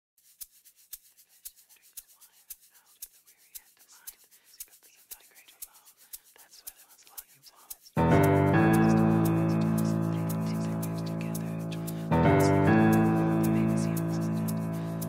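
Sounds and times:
faint whispering voices: 1.7s - 15.0s.

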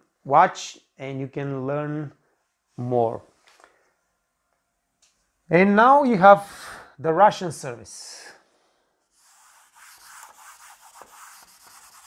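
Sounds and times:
eraser rubbing on whiteboard: 9.1s - 12.0s.

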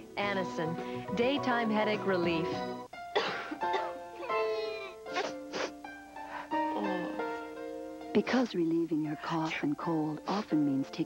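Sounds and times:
background music: 0.0s - 11.0s
man coughing: 3.1s - 4.0s.

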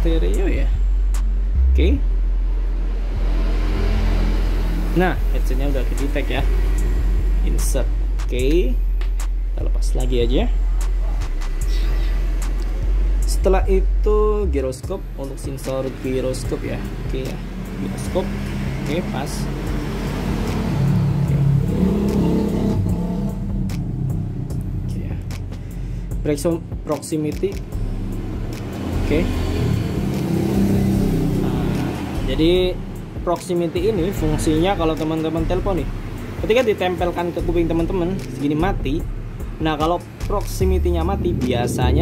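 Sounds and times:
low engine rumble: 0.0s - 26.9s.

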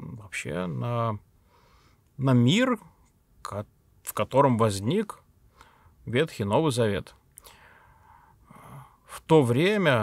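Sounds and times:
man breathing in softly: 1.4s - 2.1s, 5.4s - 6.0s, 7.4s - 9.1s
man's voice: 9.1s - 10.0s.

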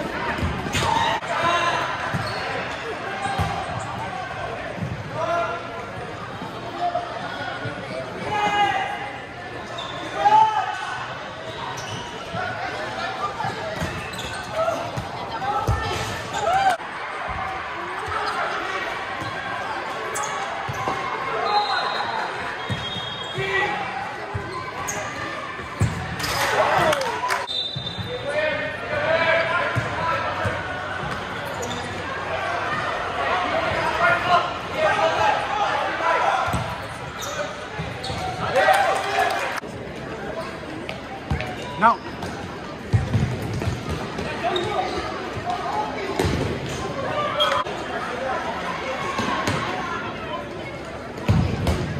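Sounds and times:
players and spectators calling out: 0.0s - 43.0s, 43.6s - 51.9s
ball kicked and bouncing on court: 36.4s - 36.8s, 42.2s - 44.7s, 51.2s - 51.9s.

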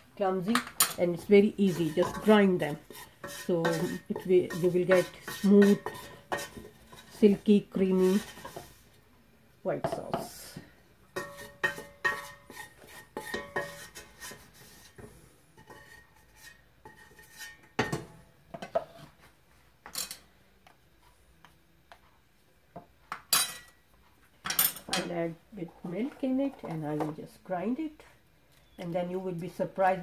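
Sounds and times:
wooden spatula scraping metal pot: 0.4s - 8.9s, 11.1s - 17.9s, 25.0s - 27.4s
spatula tapping and clattering: 0.5s - 7.1s, 11.1s - 18.9s.

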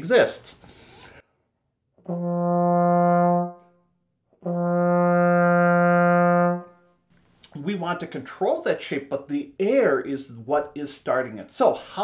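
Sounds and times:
trombone notes: 2.0s - 3.8s, 4.4s - 6.8s.

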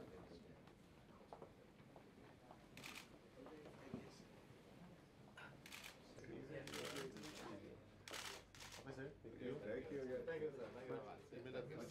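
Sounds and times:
people talking quietly: 0.0s - 11.9s.

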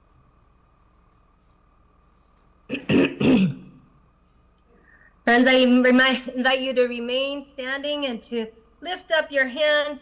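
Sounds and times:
person clearing throat: 2.7s - 3.8s.

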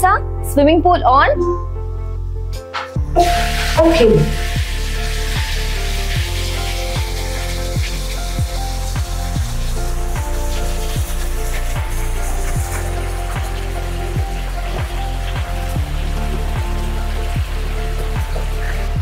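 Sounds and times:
electronic music: 1.1s - 1.8s, 2.5s - 19.0s
water falling into pool: 3.2s - 19.0s.

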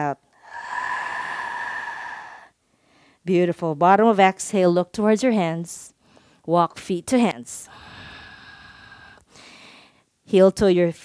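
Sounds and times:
woman exhaling deeply: 0.4s - 2.5s.

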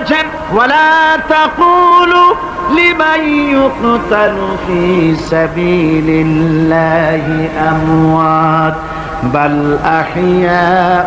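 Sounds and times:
man chanting melodic recitation: 0.0s - 11.0s.

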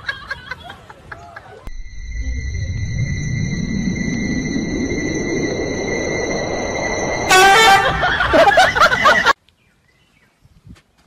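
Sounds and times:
thin high tones and noise: 1.7s - 9.3s
horn-like toot: 6.9s - 8.6s.

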